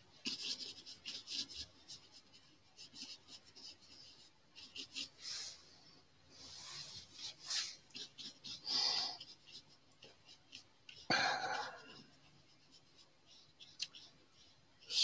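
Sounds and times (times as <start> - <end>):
brush strokes on canvas: 0.3 - 15.0.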